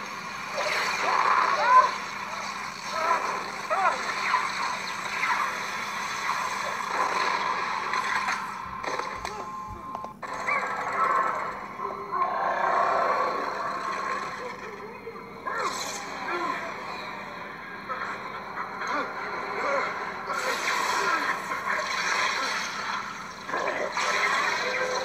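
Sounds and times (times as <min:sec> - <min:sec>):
voices in animated film: 0:00.0 - 0:25.0.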